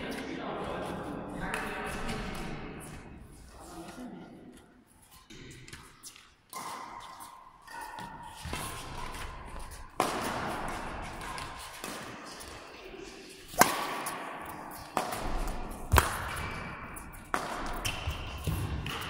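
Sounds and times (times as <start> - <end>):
racket hitting shuttlecock: 5.3 - 19.0.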